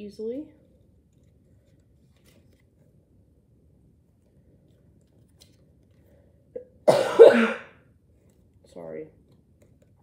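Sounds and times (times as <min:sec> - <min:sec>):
woman coughing: 0:06.6 - 0:07.8.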